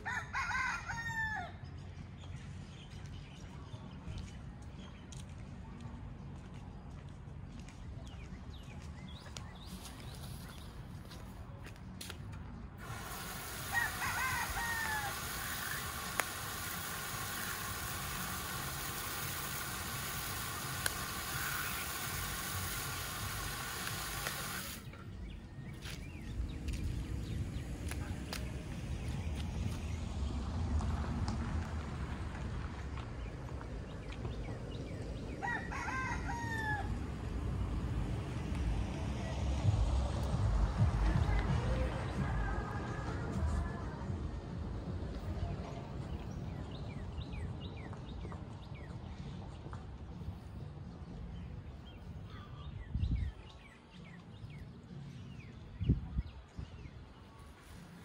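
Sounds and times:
rooster crowing: 0.0s - 1.6s, 13.4s - 16.2s, 35.4s - 37.0s
steady hiss: 12.8s - 24.9s
low rumble: 36.8s - 45.9s.

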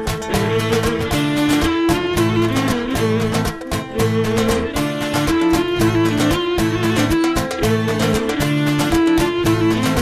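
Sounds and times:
bowed lyra melody: 0.0s - 10.0s
strummed lute and acoustic guitar: 0.0s - 10.0s.

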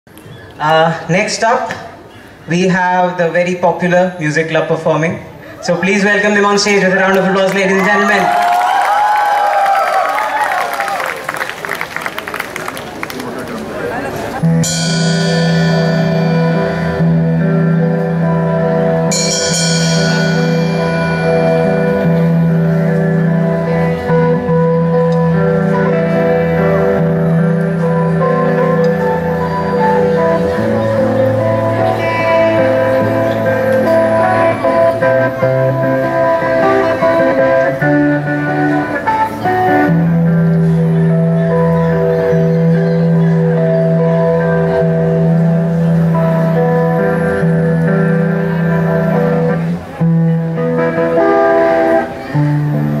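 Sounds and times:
live band guitars playing: 13.5s - 53.0s.

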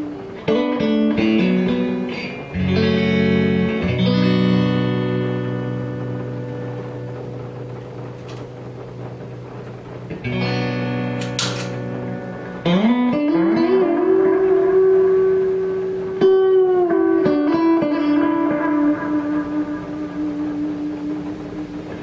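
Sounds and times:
clean electric guitar notes and chords: 0.0s - 22.0s.

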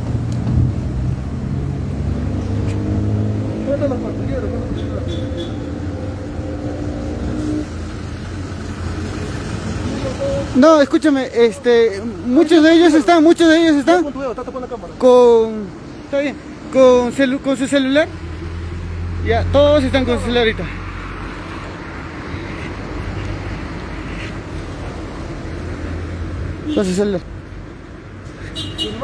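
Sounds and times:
cars rumbling on city street: 0.0s - 29.0s.

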